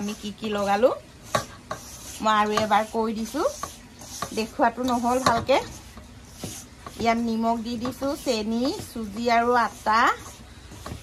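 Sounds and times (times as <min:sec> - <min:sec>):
woman speaking: 0:00.0 - 0:01.1, 0:02.1 - 0:03.7, 0:04.3 - 0:05.8, 0:06.9 - 0:10.4
hand rubbing dough in steel bowl: 0:00.0 - 0:11.0.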